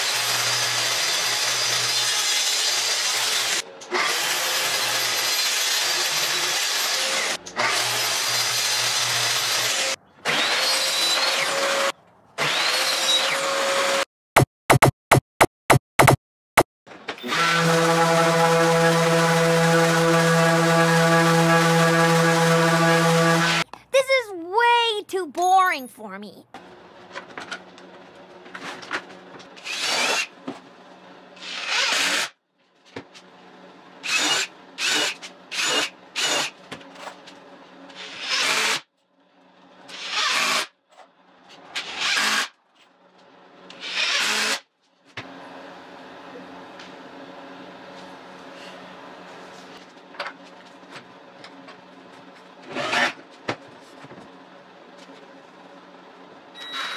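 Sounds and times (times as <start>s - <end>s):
cordless drill driving screws into wood: 0.1s - 13.5s, 29.6s - 30.3s, 31.4s - 32.3s, 34.0s - 36.6s, 38.0s - 38.8s, 39.9s - 40.7s, 41.8s - 42.5s, 43.7s - 44.6s.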